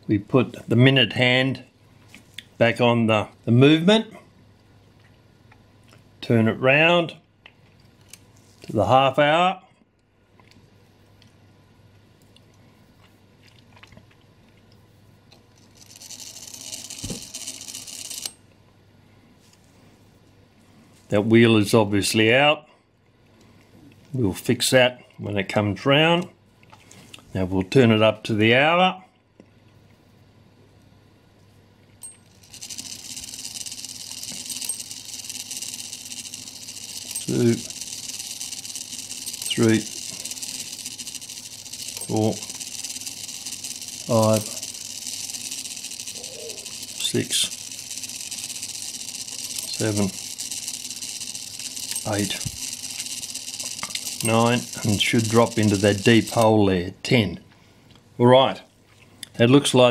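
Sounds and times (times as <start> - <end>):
clock strike train whirring: 15.6 - 18.4, 32.4 - 56.4
clock mechanism click: 32.0 - 56.5.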